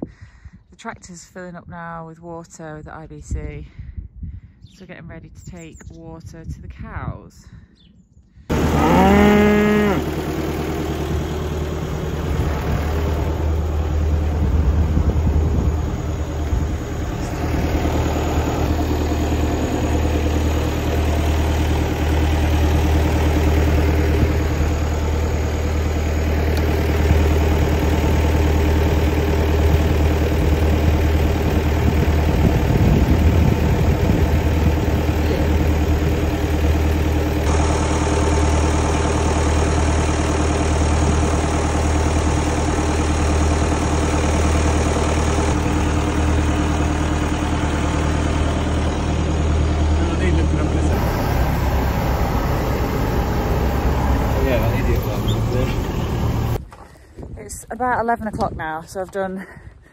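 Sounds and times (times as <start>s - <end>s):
tractor engine idling: 8.5s - 59.9s.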